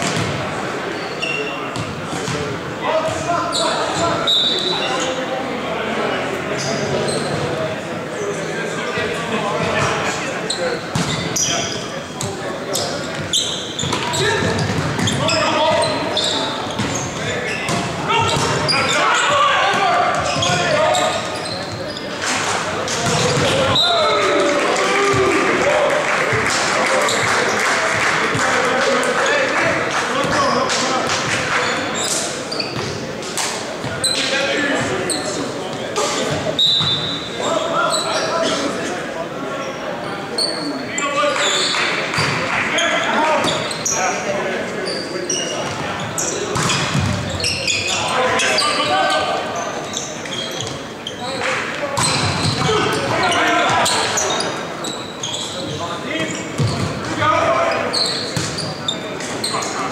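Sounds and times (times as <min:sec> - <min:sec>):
players calling and shouting: 0:00.0 - 0:59.9.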